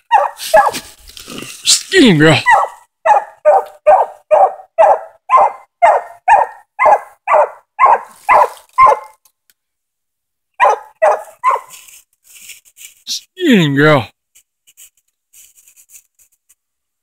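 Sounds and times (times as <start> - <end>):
dog barking: 0.0 - 0.9, 2.4 - 9.2, 10.6 - 11.8.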